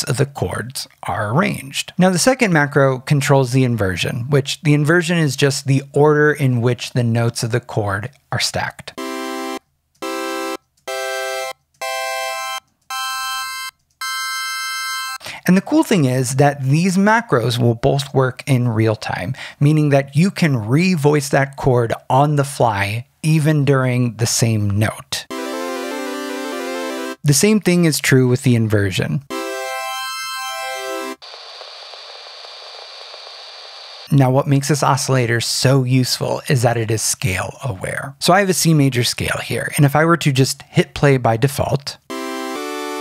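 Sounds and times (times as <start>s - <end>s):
sawtooth synth chord notes: 9.0s - 15.2s, 25.3s - 27.2s, 42.1s - 43.0s
thin static hiss: 30.4s - 35.1s.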